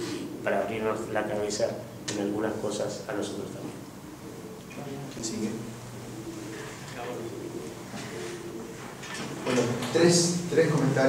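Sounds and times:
faint voices murmuring: 0.0 - 11.0.

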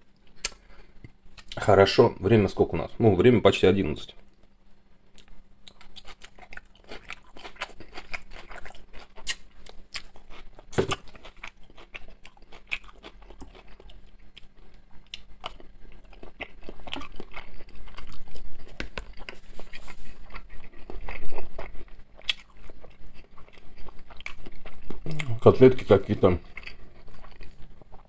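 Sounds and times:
chewing crunchy salad: 0.3 - 1.7, 5.1 - 28.0.

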